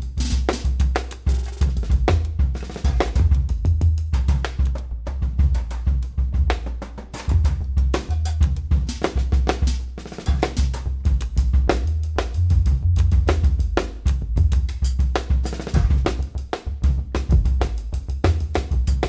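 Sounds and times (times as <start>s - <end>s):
drum kit played with sticks: 0.0s - 19.0s
deep bass keyboard notes: 11.6s - 14.7s.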